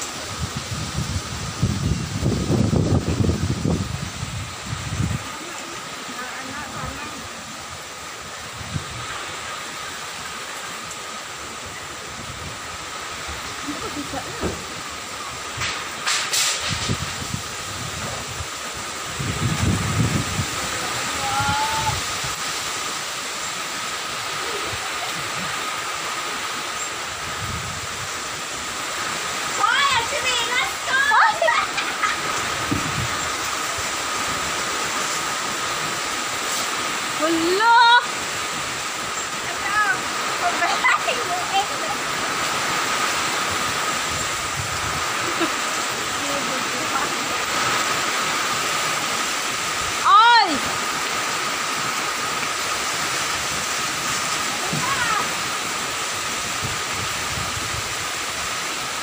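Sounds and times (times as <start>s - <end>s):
heavy rain: 0.0s - 59.0s
strong storm wind: 0.0s - 59.0s
wind gusts thumping on microphone: 0.0s - 59.0s.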